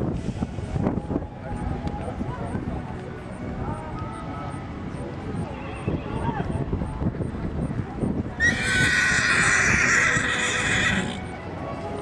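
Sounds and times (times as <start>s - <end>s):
horse whinnying: 8.4s - 11.3s.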